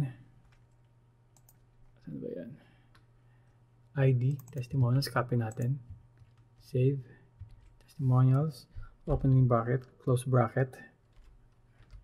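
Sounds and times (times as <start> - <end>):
keyboard and mouse clicking: 1.4 - 1.6, 4.3 - 4.8.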